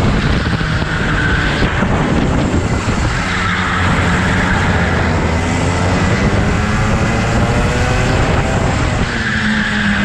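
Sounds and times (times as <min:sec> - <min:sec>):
go-kart engine running: 0:00.0 - 0:10.0.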